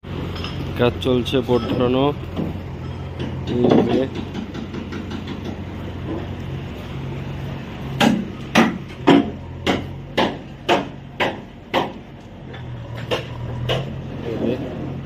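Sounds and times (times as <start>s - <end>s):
low machinery hum: 0.0s - 15.0s
voices: 0.6s - 7.4s, 11.2s - 14.9s.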